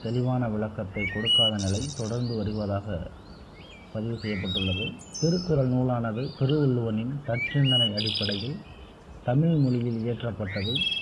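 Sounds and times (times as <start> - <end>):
man speaking: 0.0 - 3.2, 4.0 - 8.6, 9.3 - 10.9
birds chirping: 0.0 - 11.0.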